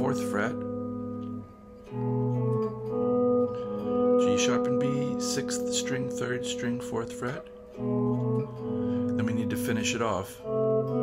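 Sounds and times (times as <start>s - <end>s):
clean electric guitar notes: 0.0s - 11.0s.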